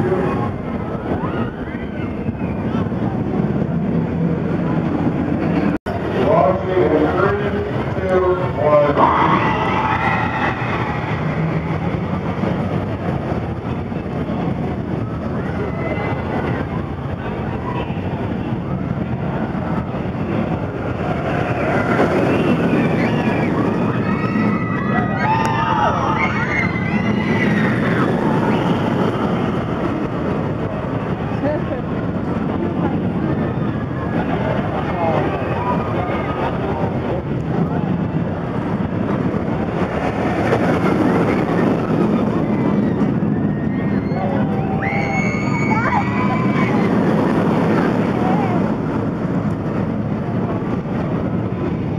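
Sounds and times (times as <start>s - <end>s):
crowd chatter: 0.0s - 51.9s
roller coaster train rushing: 0.0s - 51.9s
riders screaming: 8.9s - 11.5s, 21.3s - 29.0s, 42.5s - 47.1s.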